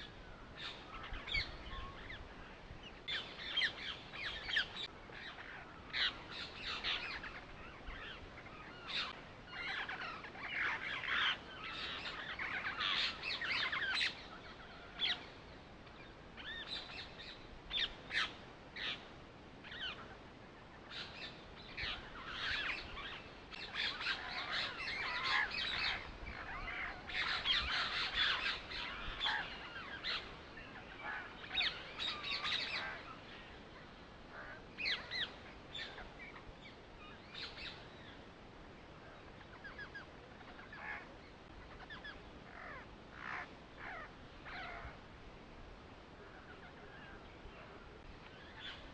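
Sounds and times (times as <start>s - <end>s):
birds chirping and calling: 0.0s - 38.3s, 39.0s - 45.0s, 46.2s - 48.9s.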